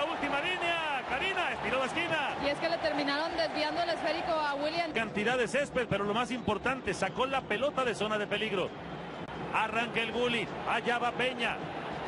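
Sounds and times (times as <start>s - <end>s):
man commentating on football: 0.0s - 2.4s, 4.9s - 8.7s, 9.4s - 11.7s.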